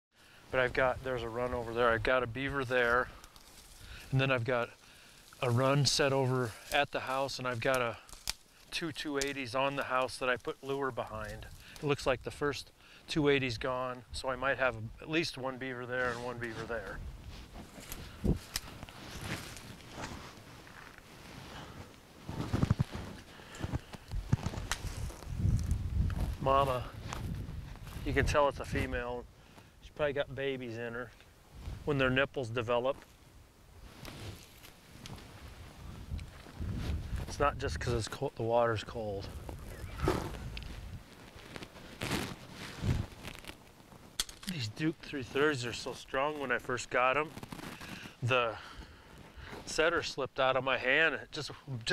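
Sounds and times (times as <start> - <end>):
sticks and brush rustling: 2.5 - 12.0, 15.8 - 29.7, 33.8 - 37.4, 39.2 - 48.3.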